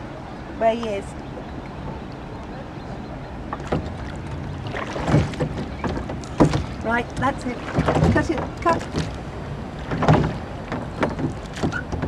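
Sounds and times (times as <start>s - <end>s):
oars splashing in water: 0.7s - 12.0s.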